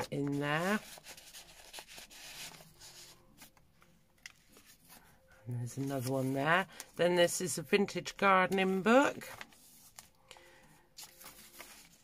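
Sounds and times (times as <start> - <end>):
paper pages rustling: 0.0 - 6.9, 8.5 - 12.0.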